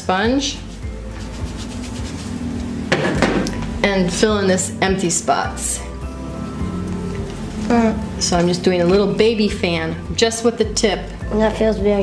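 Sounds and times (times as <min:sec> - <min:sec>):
quiet music: 0:00.0 - 0:12.0.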